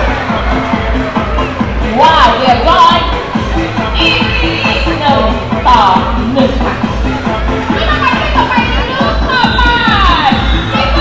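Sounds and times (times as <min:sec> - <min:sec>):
music with steady bass beat: 0:00.0 - 0:11.0.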